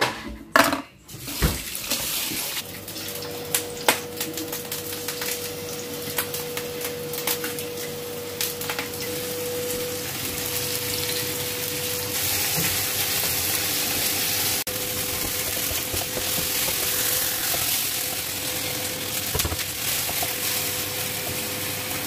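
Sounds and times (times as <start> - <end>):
meat sizzling in hot oil: 1.7 - 22.0.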